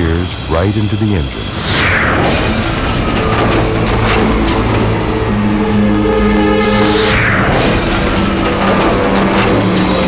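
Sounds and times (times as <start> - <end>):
faint engine whine: 0.0 - 10.0
jet engine roaring: 0.0 - 10.0.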